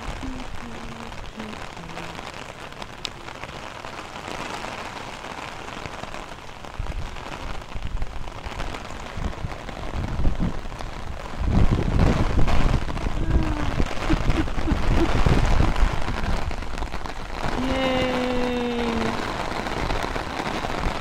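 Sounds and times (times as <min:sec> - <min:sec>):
rain on an umbrella: 0:00.0 - 0:21.0
rain on wet pavement: 0:00.0 - 0:21.0
low rumbling bursts: 0:09.1 - 0:21.0.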